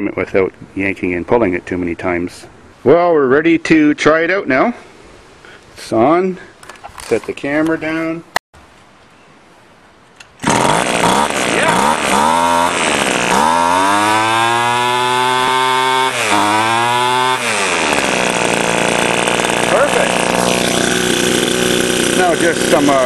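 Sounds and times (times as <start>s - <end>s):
string trimmer engine running: 10.4s - 23.0s.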